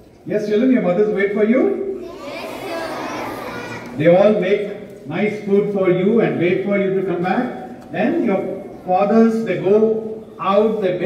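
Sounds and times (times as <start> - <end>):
crowd of children answering together: 2.0 - 4.0.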